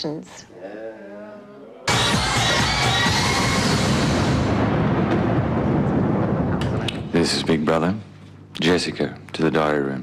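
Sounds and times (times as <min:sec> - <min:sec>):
loud rushing sweep: 0:01.9 - 0:07.2
low rumble: 0:03.0 - 0:08.1.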